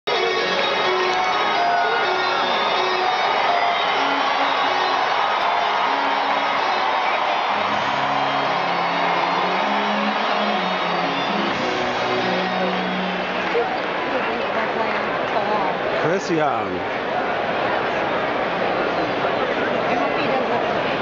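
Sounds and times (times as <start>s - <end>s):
music over stadium loudspeakers: 0.1s - 15.1s
crowd hubbub: 0.1s - 21.0s.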